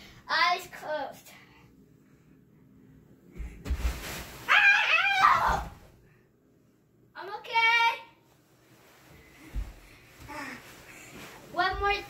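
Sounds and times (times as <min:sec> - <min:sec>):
child screaming: 0:04.5 - 0:05.8.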